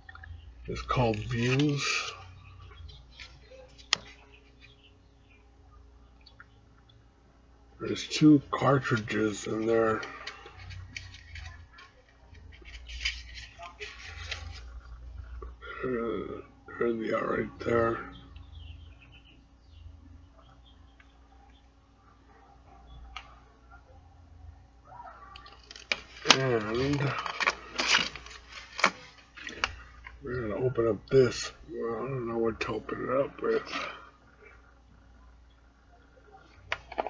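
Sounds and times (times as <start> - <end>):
plastic packaging clicks and rustles: 0.8 - 4.7, 8.6 - 14.9, 25.3 - 30.2.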